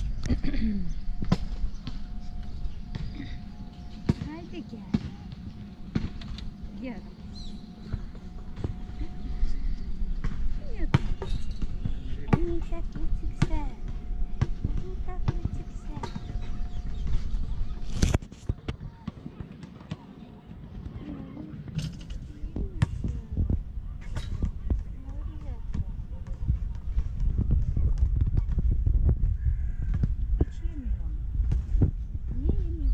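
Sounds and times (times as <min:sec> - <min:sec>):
low rumble: 0:00.0 - 0:18.1, 0:21.7 - 0:32.9.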